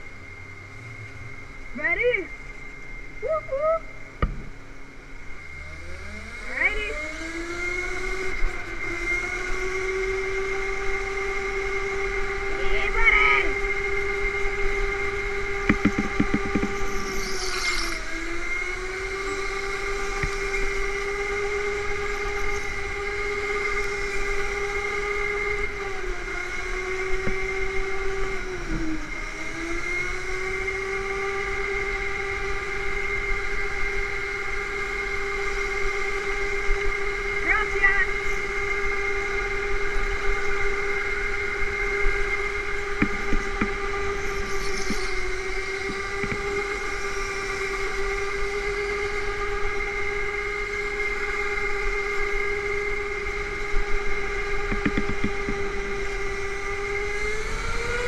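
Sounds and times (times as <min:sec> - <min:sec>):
electric motor whining: 0:03.8 - 0:58.0.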